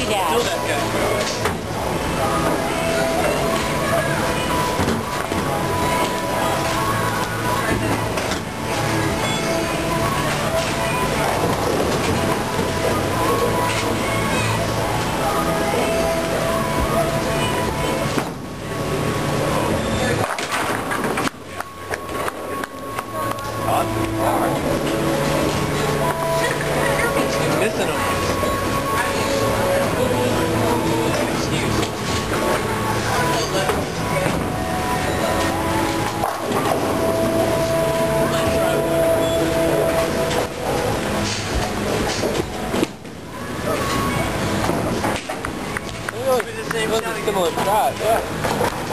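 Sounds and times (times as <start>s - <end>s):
background music: 0.0s - 48.9s
bowling balls rolling on lanes: 0.0s - 48.9s
bowling balls rolling on wooden lanes: 1.1s - 14.0s.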